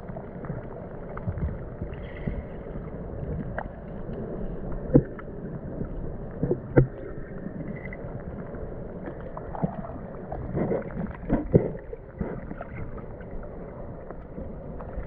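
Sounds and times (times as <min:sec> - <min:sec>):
muffled creek water rushing: 0:00.0 - 0:15.0.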